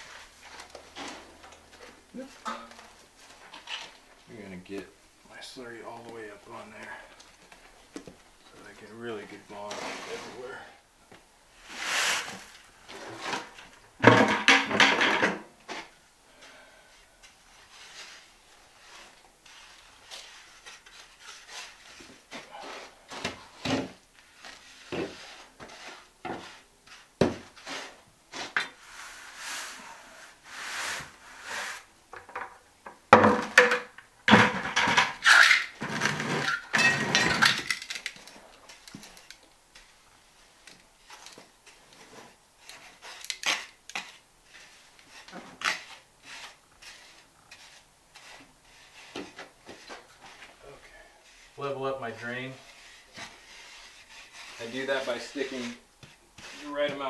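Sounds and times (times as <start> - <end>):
trowel scraping mortar on concrete: 52.6 - 57.0.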